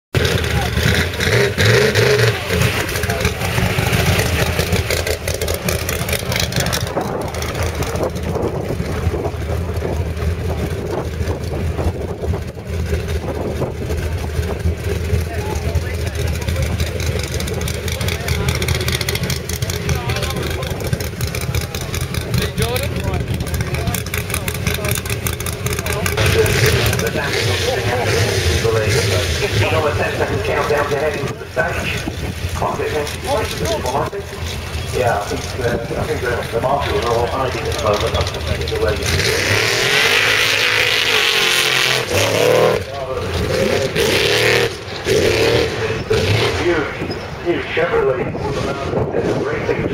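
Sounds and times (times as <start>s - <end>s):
truck engine idling: 0.2s - 45.1s
people's voices: 0.2s - 49.9s.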